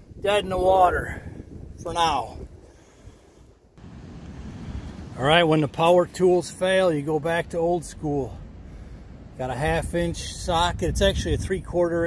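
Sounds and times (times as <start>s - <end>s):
wind on microphone: 0.0s - 5.2s, 8.7s - 12.0s.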